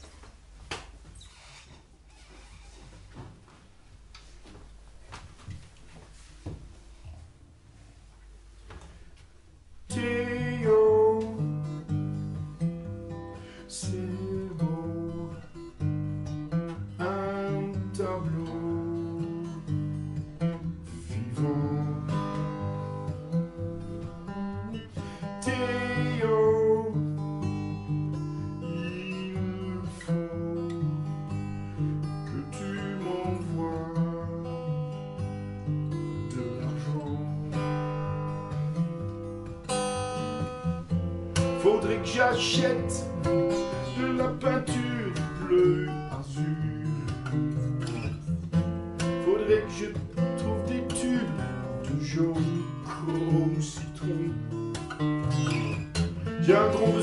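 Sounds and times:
acoustic guitar strumming: 9.5s - 57.0s.

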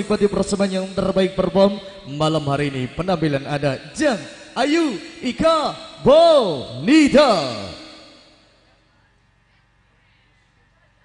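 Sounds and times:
amplified voice echoing: 0.0s - 8.6s
sound system low hum: 0.0s - 11.0s.

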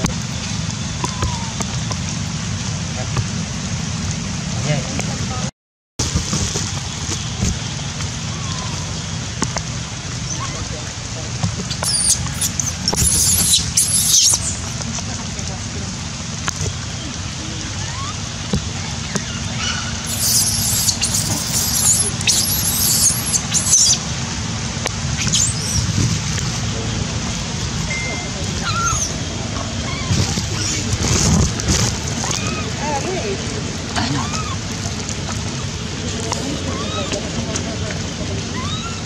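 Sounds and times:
baby monkeys screaming: 1.0s - 1.7s, 8.3s - 8.9s, 10.3s - 10.7s, 11.7s - 14.7s, 17.8s - 18.2s, 18.8s - 24.0s, 25.2s - 26.0s, 28.6s - 33.0s, 34.0s - 34.6s, 36.5s - 37.2s, 38.5s - 39.0s
rain hissing: 6.0s - 39.0s.

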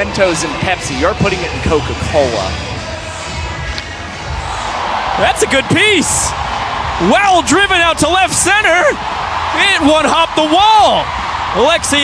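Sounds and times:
ballpark crowd noise: 0.0s - 12.0s
music: 0.0s - 12.0s.

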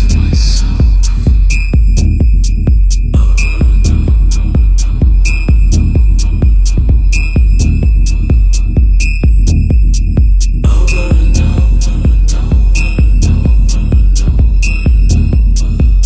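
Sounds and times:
kick drum: 0.0s - 16.0s
ticking hi-hats: 0.0s - 16.0s.

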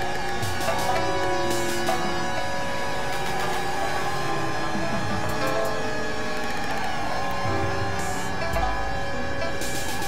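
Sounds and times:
experimental electronic drone: 0.0s - 10.0s.

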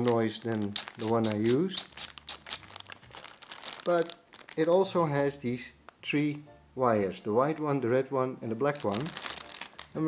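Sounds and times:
plastic bag crinkling: 0.0s - 5.1s, 8.6s - 10.0s.

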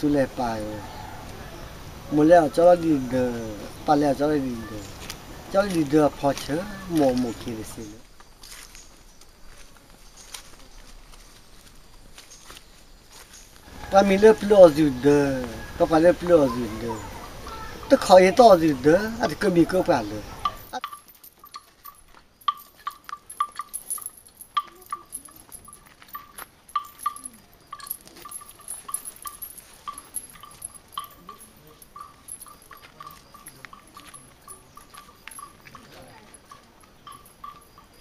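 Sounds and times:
bell clanking: 14.0s - 38.0s.

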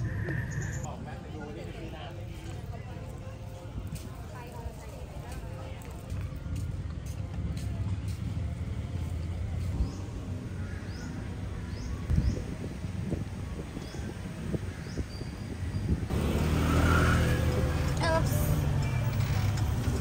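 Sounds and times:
bus engine and road rumble: 0.0s - 20.0s
street traffic rumble: 0.0s - 20.0s.

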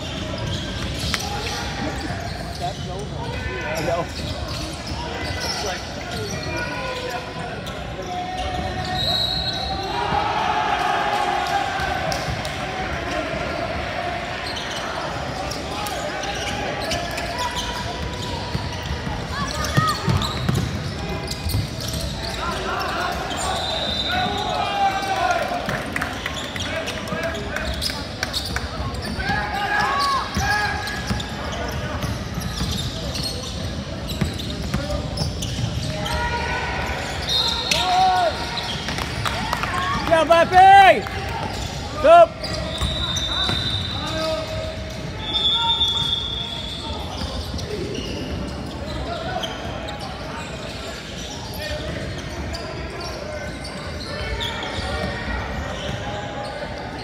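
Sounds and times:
sneakers squeaking: 0.0s - 57.0s
voices of players and spectators: 0.0s - 57.0s.

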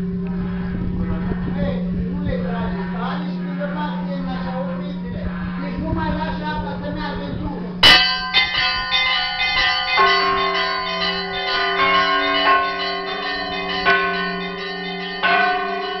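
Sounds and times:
church bells ringing: 0.0s - 1.9s, 2.5s - 6.4s, 7.8s - 16.0s
deep bell hum: 0.0s - 6.0s, 7.8s - 16.0s.

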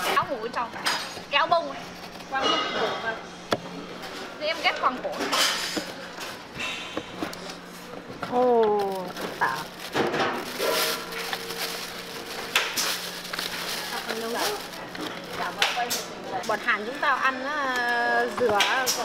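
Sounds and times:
plastic bag rustling: 7.5s - 16.9s.

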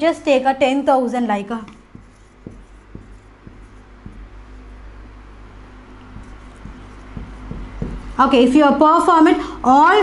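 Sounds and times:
marker writing on whiteboard: 1.6s - 5.0s, 5.6s - 8.4s.

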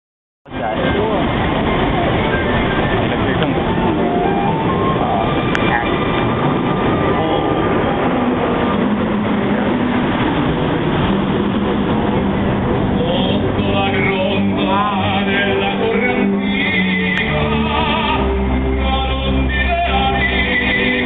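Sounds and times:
music playing: 0.5s - 21.0s.

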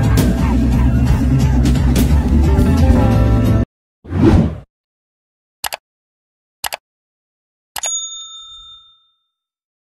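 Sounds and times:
notification bell ding: 7.8s - 9.5s.

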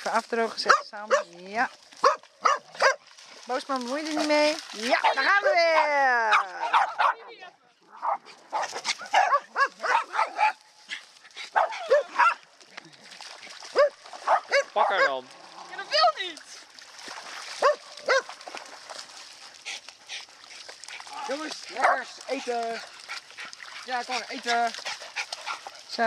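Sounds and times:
dogs barking: 0.6s - 1.3s, 2.0s - 3.0s, 5.0s - 7.3s, 7.9s - 12.5s, 13.7s - 15.3s, 17.6s - 18.4s, 21.7s - 23.5s.

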